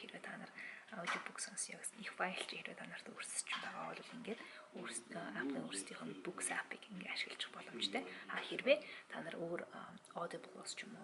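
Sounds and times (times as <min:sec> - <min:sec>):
woman talking: 0:00.0 - 0:11.0.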